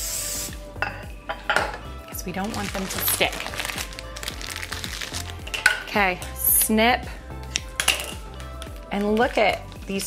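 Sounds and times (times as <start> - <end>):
soft background music: 0.0 - 10.0
scissors snipping plastic bag: 2.4 - 5.4.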